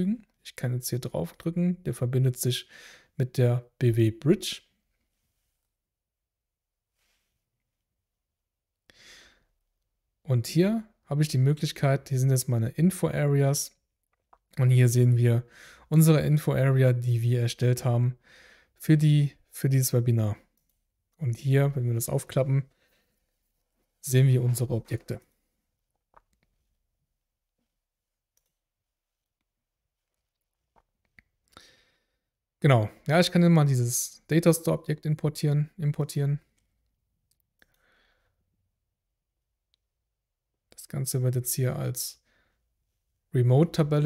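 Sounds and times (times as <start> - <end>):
soft breath into microphone: 2.7 - 3.2.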